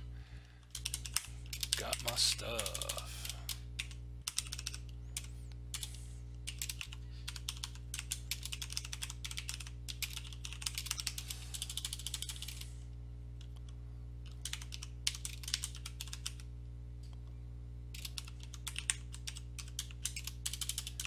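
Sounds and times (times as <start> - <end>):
typing on computer keyboard: 0.7 - 12.7, 14.2 - 16.5, 17.9 - 21.0.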